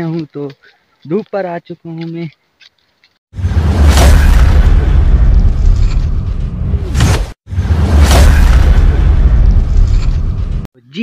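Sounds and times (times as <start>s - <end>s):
deep bass boom: 3.4s - 10.7s.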